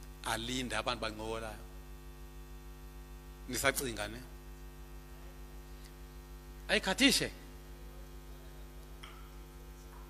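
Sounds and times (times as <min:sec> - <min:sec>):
electrical mains hum: 0:00.0 - 0:10.0
man speaking into a microphone: 0:00.2 - 0:01.7, 0:03.4 - 0:04.4, 0:06.6 - 0:07.5.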